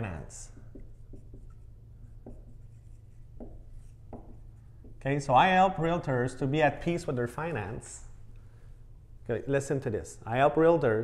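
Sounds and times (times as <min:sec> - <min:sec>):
marker writing on whiteboard: 0:00.0 - 0:05.2.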